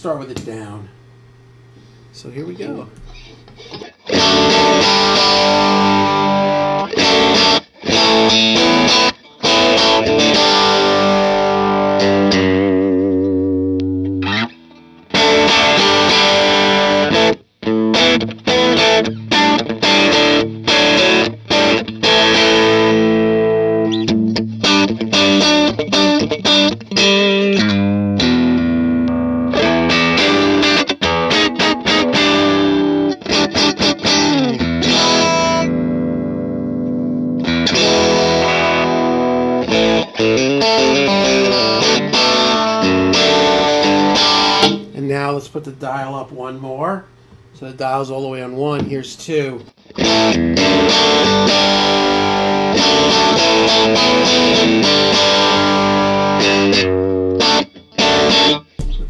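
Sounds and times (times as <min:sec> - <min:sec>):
overdriven electric guitar chords: 0:02.8 - 0:45.0, 0:49.7 - 0:59.0.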